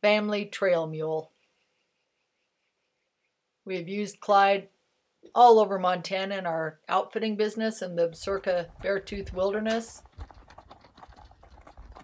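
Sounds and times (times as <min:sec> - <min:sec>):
hooves walking on gravel: 0:08.0 - 0:12.0.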